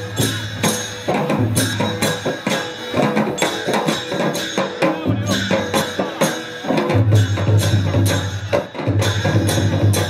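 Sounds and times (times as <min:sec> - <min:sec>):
barrel drums beating: 0:00.0 - 0:10.0
clashing hand cymbals: 0:00.0 - 0:10.0.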